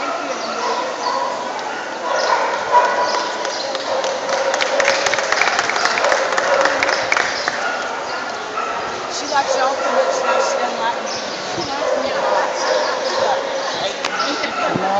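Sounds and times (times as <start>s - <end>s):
crowd chatter: 0.0s - 14.9s.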